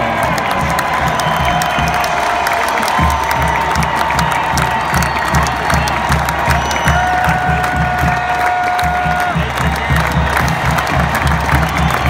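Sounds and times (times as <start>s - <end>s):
marching band playing: 0.0s - 12.0s
stadium crowd cheering: 0.0s - 12.0s.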